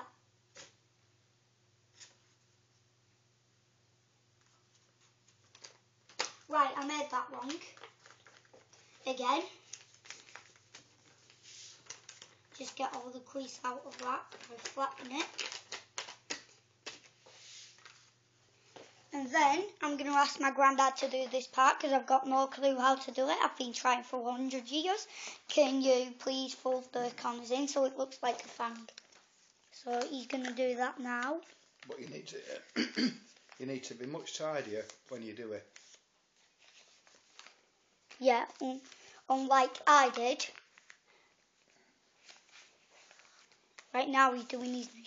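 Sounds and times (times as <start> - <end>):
paper crinkling: 4.4 - 19.0, 26.8 - 45.0
newspaper rustling: 4.4 - 24.8, 25.5 - 45.0
hand rubbing paper: 7.3 - 15.3, 16.8 - 18.2.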